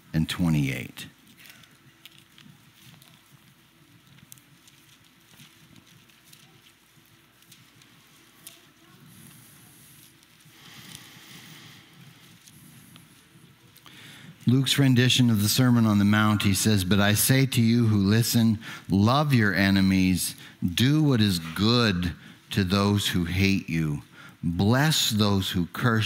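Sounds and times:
thin pages rustling: 1.1 - 14.5.

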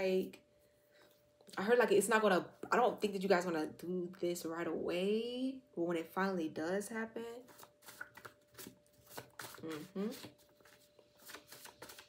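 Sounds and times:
cards being shuffled: 7.5 - 12.0.

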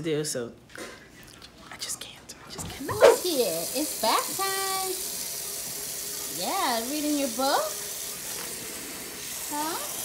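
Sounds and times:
faucet running into a metal sink: 2.9 - 10.0.

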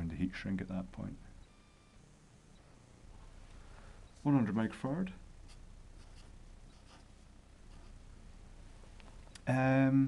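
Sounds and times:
marker drawing on paper: 5.5 - 8.0.

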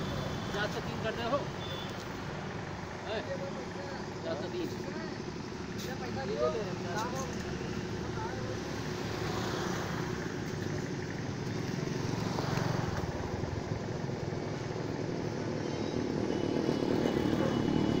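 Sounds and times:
outdoor traffic noise: 0.0 - 18.0
vehicles passing: 0.0 - 18.0.

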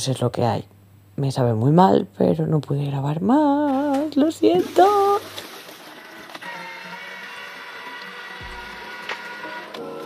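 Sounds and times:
electric motor whirring: 5.8 - 10.0
background music: 6.5 - 10.0.

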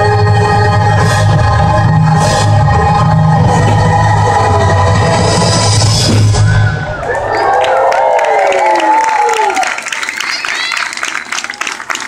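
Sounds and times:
show music with heavy bass: 0.0 - 6.9
crowd cheering and whooping: 6.3 - 12.0.

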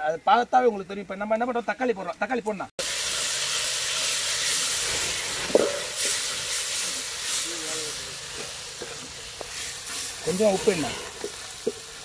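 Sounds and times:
onions and tomatoes sizzling: 2.8 - 12.0.

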